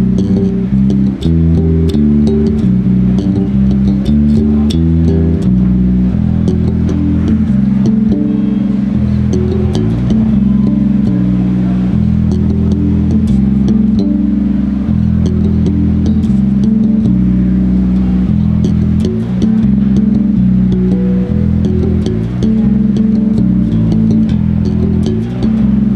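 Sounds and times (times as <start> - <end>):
bass string clicks: 0.0 - 25.9
electric bass played fingerstyle: 0.0 - 25.9.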